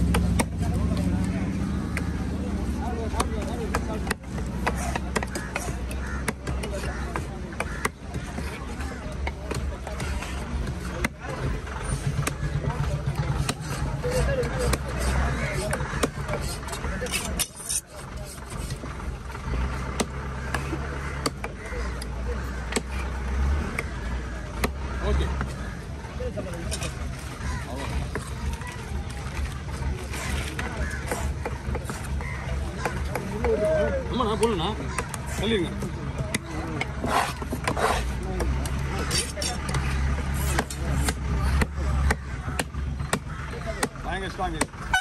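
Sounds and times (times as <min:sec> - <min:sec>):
cleaver chopping on wooden block: 0:03.1 - 0:08.6, 0:13.3 - 0:17.8, 0:20.0 - 0:21.6, 0:22.7 - 0:23.0, 0:30.8 - 0:32.2, 0:39.2 - 0:44.7
low steady rumble: 0:07.0 - 0:45.0.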